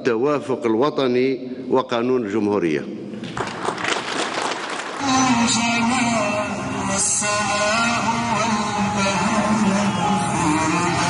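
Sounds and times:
audience applauding: 3.4s - 5.2s.

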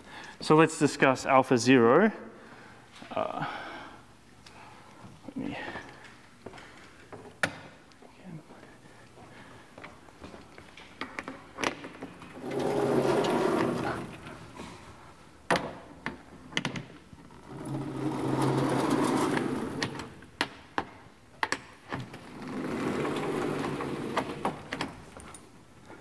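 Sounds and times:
blackboard panels rumbling sliding: 12.3s - 14.8s, 17.4s - 20.2s, 22.2s - 24.7s.

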